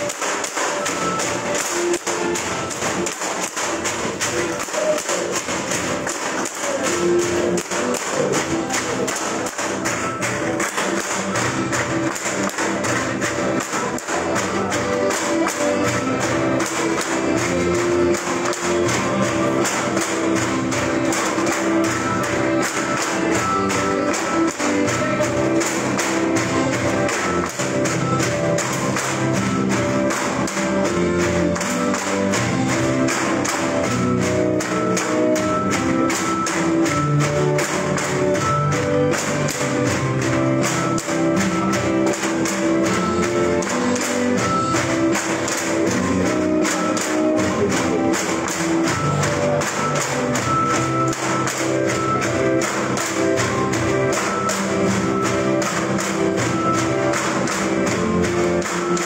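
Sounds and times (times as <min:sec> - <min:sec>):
bamboo poles clacking: 0:00.0 - 0:59.0
music with steady beat: 0:00.0 - 0:59.0.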